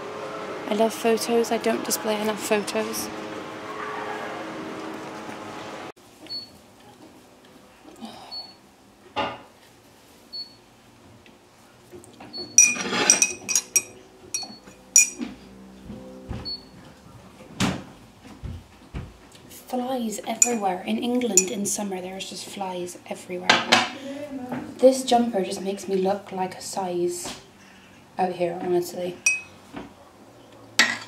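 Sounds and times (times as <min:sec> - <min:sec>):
shop background sound: 0:12.2 - 0:17.4, 0:19.3 - 0:21.8, 0:28.5 - 0:29.7
mugs and cutlery clinking: 0:12.6 - 0:15.2, 0:29.2 - 0:29.6, 0:30.8 - 0:31.0.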